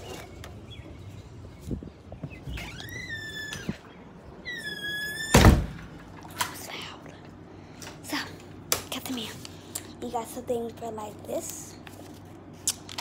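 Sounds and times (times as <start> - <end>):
door hinges squealing: 2.3 - 5.7
door shutting with thud: 4.6 - 5.9.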